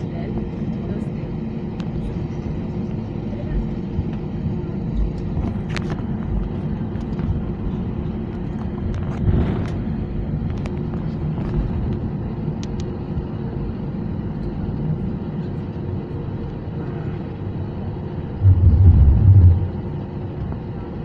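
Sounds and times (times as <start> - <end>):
airplane cabin low rumble: 0.0 - 21.0
deeper rumble: 18.2 - 20.6.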